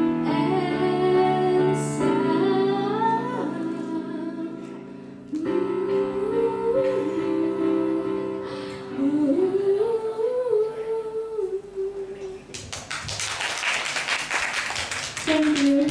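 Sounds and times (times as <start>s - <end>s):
woman singing into a microphone: 0.0s - 12.5s, 15.2s - 15.9s
soft backing music: 0.0s - 12.8s, 15.1s - 15.9s
audience applause: 12.6s - 15.9s.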